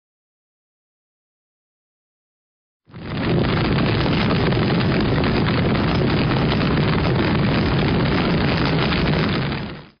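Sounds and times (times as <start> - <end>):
rumbling and crackling noise: 2.9 - 10.0.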